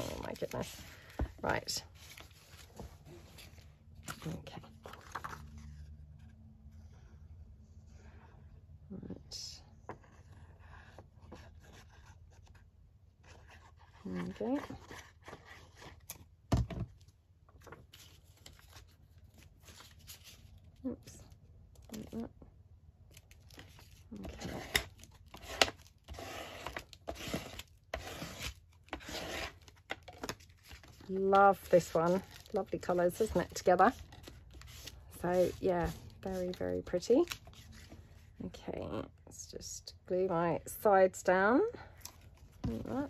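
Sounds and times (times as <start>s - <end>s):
paper rustling: 0.0s - 6.3s, 23.1s - 38.3s.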